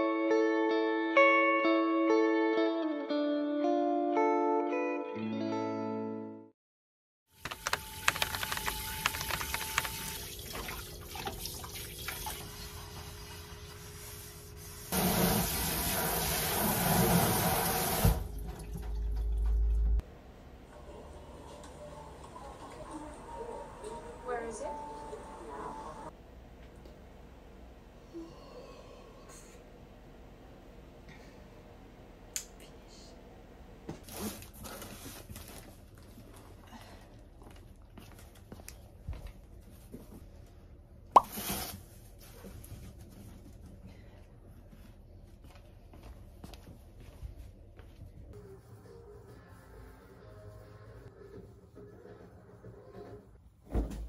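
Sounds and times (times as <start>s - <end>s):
faucet running into sink: 8.7s - 13.0s.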